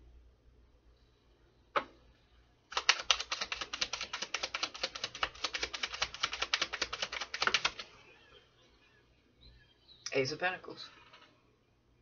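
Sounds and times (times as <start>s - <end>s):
cards being shuffled: 2.7s - 7.9s.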